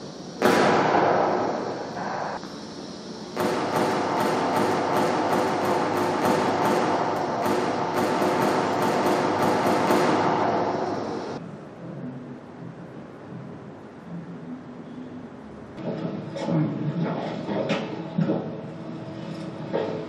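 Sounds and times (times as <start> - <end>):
rifle gunfire: 3.4 - 10.8.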